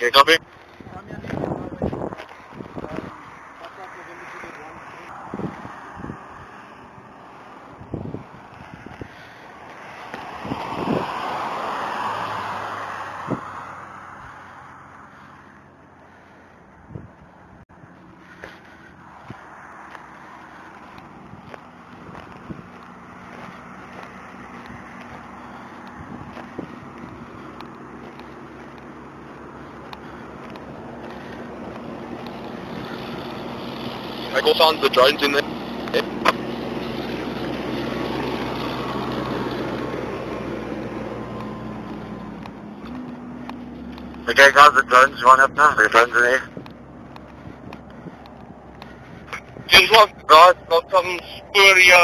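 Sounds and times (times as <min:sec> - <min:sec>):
highway traffic rushing past: 0:00.0 - 0:52.0.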